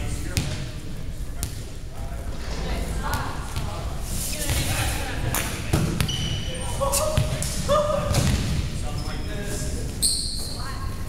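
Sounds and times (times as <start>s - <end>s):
echoing indistinct voices: 0.0s - 11.0s
shoes squeaking on hardwood court: 5.4s - 7.5s, 8.1s - 11.0s.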